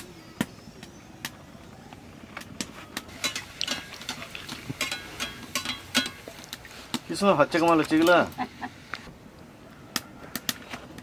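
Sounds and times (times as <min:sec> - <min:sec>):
metal spoon clinking on pan: 0:03.2 - 0:06.2.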